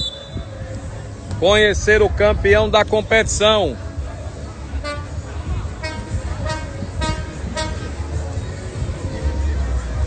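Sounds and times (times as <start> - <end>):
horn tooting: 4.8 - 8.0.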